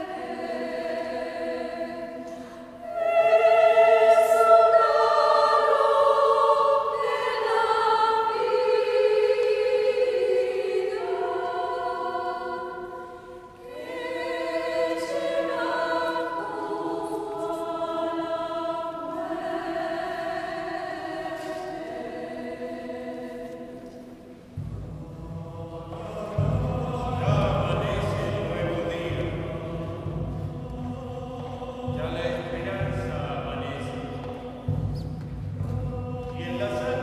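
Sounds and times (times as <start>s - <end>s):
mixed choir singing unaccompanied: 0.0s - 37.0s.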